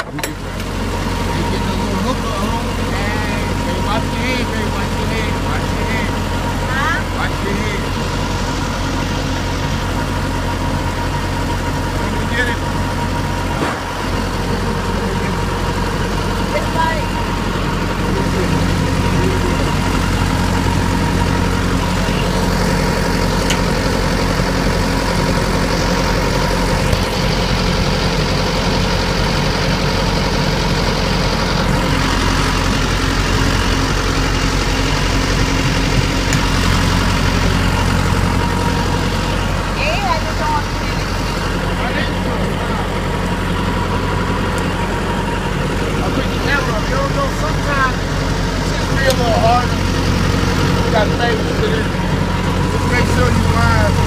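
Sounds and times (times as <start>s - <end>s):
truck diesel engine idling: 0.0s - 54.0s.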